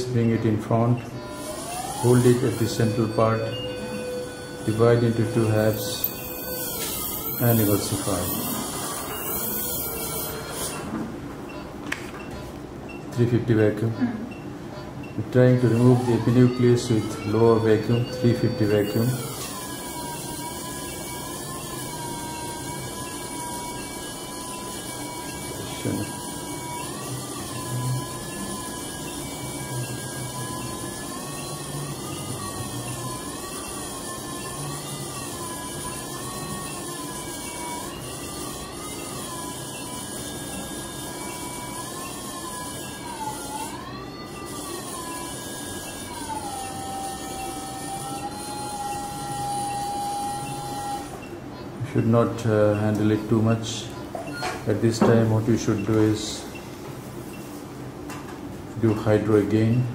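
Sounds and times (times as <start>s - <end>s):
wavering machine tone: 0.0s - 59.9s.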